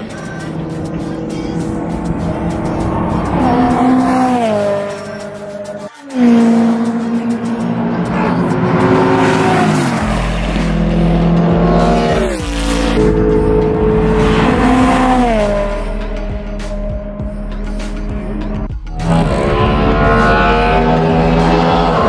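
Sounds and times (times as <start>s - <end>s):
race cars passing: 0.0s - 22.0s.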